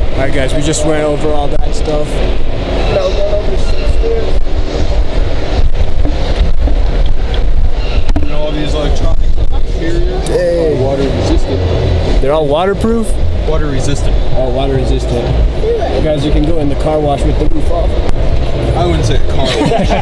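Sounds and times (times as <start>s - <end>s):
car engine rumbling: 0.0s - 20.0s.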